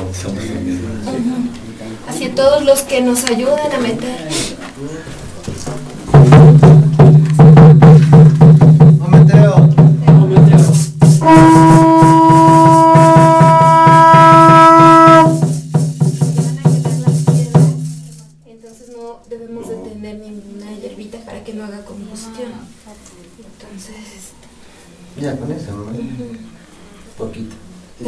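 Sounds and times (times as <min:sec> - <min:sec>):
frame drum beating: 0:06.0 - 0:18.4
low held note: 0:11.2 - 0:15.4
higher held note: 0:11.2 - 0:15.5
rattles shaking: 0:15.3 - 0:19.4.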